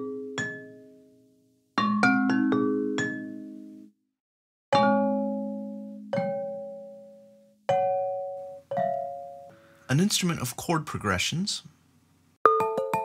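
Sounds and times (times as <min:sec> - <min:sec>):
glass marimba notes ringing: 0:01.8 - 0:03.6, 0:04.7 - 0:09.6, 0:12.5 - 0:13.0.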